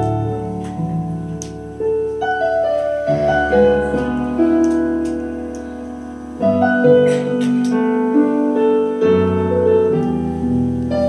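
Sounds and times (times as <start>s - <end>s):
piano-like accompaniment: 0.0s - 11.0s.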